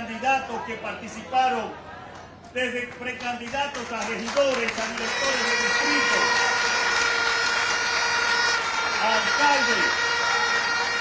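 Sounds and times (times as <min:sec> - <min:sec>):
crowd applauding: 0:02.1 - 0:11.0.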